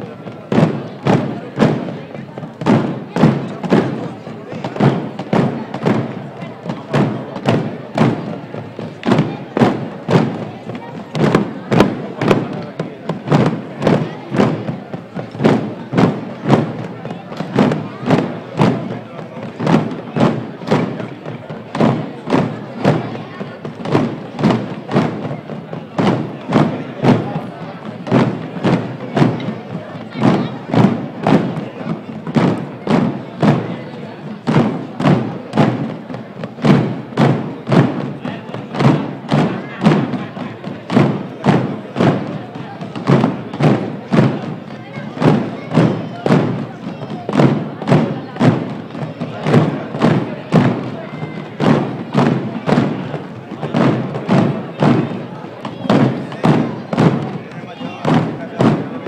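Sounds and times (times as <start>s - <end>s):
drum beating a marching pulse: 0.0s - 59.0s.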